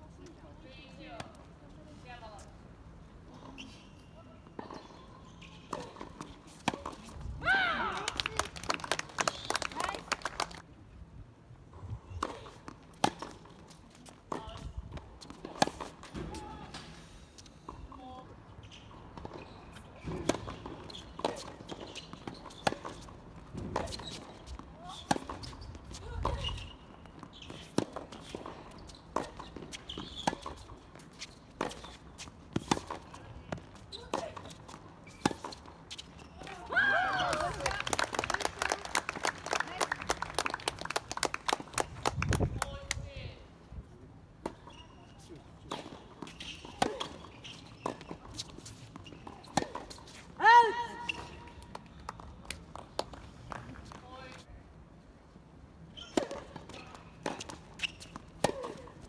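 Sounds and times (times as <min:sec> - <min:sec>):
tennis balls bouncing on court: 0:04.6 - 0:10.1, 0:12.1 - 0:16.6, 0:18.7 - 0:43.2, 0:45.6 - 0:54.4, 0:56.0 - 0:59.0
rackets hitting tennis balls: 0:56.0 - 0:59.0.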